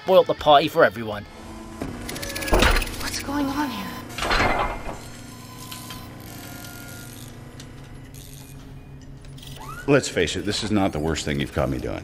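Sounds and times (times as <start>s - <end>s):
mechanical whirring: 1.2s - 12.0s
metal parts clicking and clanking: 4.2s - 5.1s.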